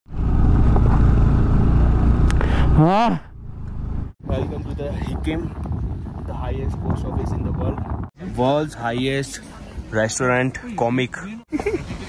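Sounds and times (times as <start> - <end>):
motorcycle engine running: 0.1 - 4.6
road rumble: 0.1 - 12.0
wind: 0.1 - 12.0.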